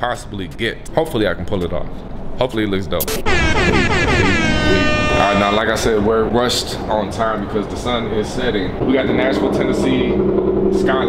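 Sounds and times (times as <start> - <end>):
buzzy tone gliding down in pitch: 3.0 - 5.6
sharp hit sound effect: 3.0 - 5.6.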